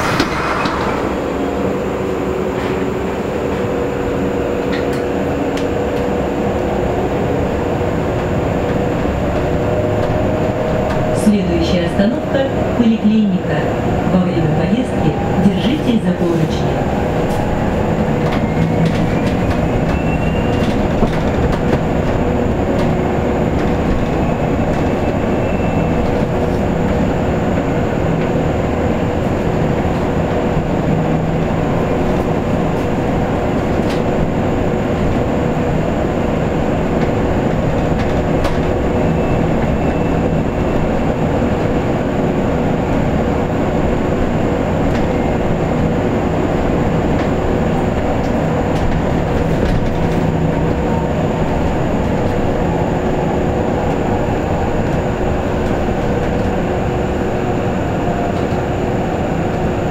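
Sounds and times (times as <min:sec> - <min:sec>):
tyres rumbling on road: 0:00.0 - 0:59.9.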